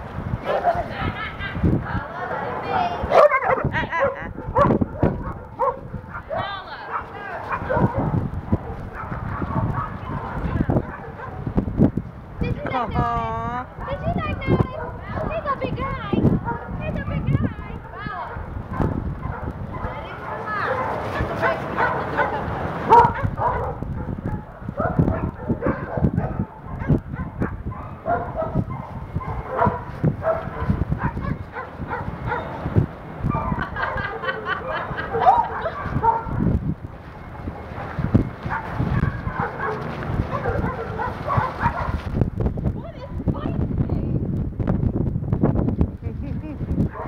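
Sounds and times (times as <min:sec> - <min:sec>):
dogs barking and yipping: 0:00.4 - 0:01.2, 0:02.2 - 0:11.6, 0:13.9 - 0:42.1.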